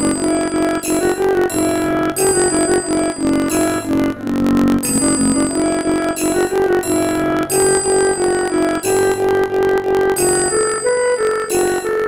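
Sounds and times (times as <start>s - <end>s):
synthesized bell-like melody: 0.0s - 12.0s.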